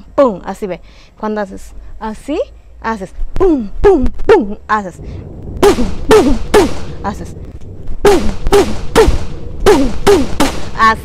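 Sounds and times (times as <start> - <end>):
person imitating gunshots vocally: 5.6 - 7.3, 8.0 - 11.0.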